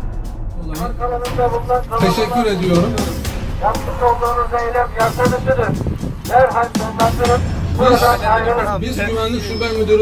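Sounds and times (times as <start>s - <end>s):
background music: 0.0s - 10.0s
man speaking into a microphone: 0.7s - 10.0s.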